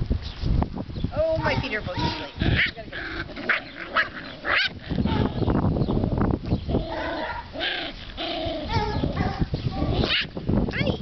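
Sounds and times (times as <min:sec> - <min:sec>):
puppies yipping: 0:01.4 - 0:05.5, 0:06.7 - 0:10.3.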